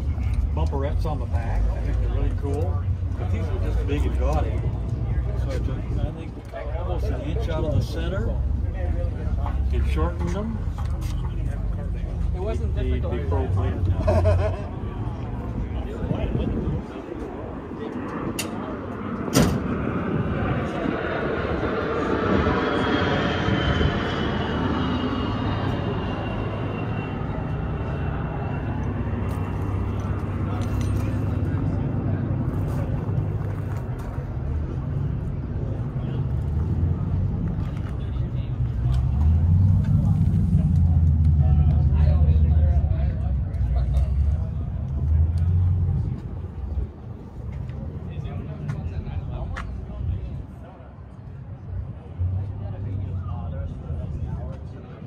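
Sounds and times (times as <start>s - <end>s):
heavy low rumble: 0.0s - 55.0s
murmur of voices: 0.0s - 55.0s
vehicle noise: 0.0s - 55.0s
falling whine: 13.5s - 33.3s.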